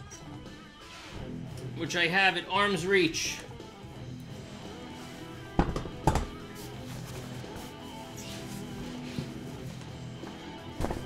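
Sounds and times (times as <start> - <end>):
background music: 0.0 - 11.0
metal stool base knocking down: 5.6 - 6.4.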